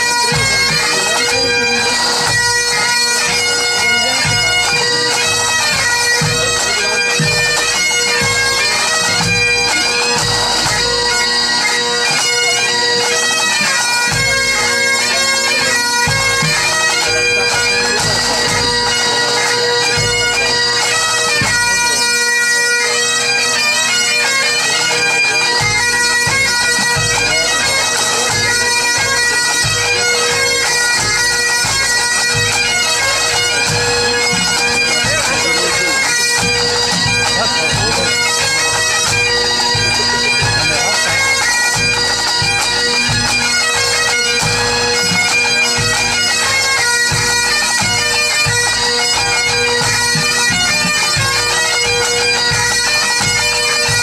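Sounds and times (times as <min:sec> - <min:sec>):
tenor drum: 0:00.0 - 0:12.2, 0:21.4 - 0:22.2, 0:25.5 - 0:46.4
bagpipes playing: 0:00.0 - 0:54.0.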